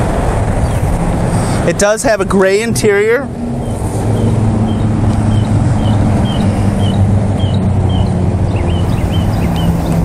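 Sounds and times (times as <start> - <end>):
vehicle engine idling: 0.0 - 10.0
small bird chirping: 3.6 - 10.0.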